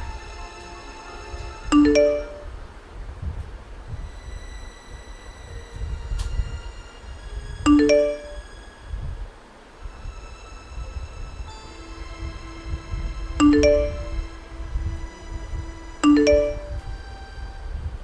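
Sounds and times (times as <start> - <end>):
dark background music: 0.0 - 2.6, 4.0 - 9.0, 9.8 - 18.0
notification chime: 1.7 - 2.5, 7.7 - 8.4, 13.4 - 14.1, 16.0 - 16.8.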